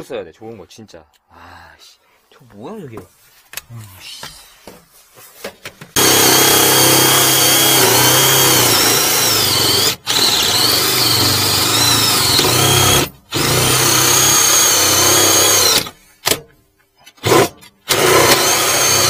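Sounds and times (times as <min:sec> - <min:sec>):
power drill cutting metal: 0:06.0 - 0:16.0, 0:17.2 - 0:19.0.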